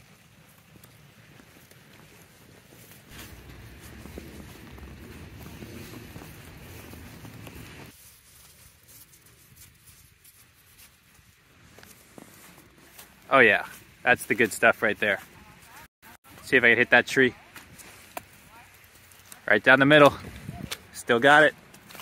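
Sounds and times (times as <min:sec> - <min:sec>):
wet snow crunching: 0:00.0 - 0:22.0
low rough rumble: 0:03.1 - 0:07.9.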